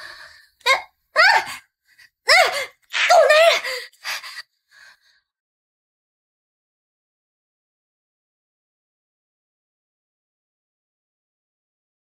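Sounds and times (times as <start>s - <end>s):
woman crying out and gasping: 2.3s - 4.4s.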